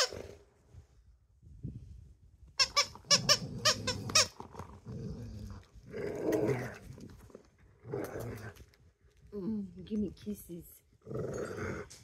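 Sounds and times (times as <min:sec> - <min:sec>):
squeaky dog toy squeaking: 0:02.6 - 0:04.4
dog growling: 0:03.2 - 0:08.7, 0:11.0 - 0:12.0.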